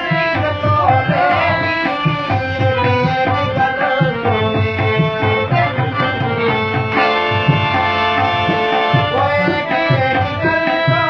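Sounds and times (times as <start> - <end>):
harmonium playing held notes: 0.0 - 11.0
tabla drumming: 0.0 - 11.0.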